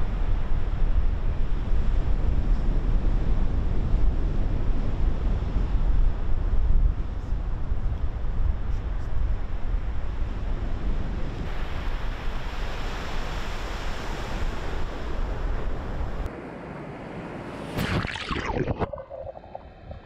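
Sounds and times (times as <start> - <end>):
waves breaking: 11.5 - 16.2, 17.5 - 20.0
water surge over camera: 17.7 - 20.0.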